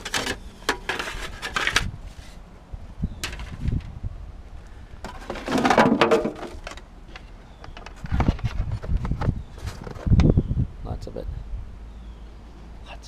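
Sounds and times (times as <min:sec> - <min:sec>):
wooden box scraping on metal: 0:00.0 - 0:02.4, 0:05.0 - 0:06.8
low wind rumble: 0:00.0 - 0:13.0
junk knocking and clattering: 0:05.0 - 0:06.8.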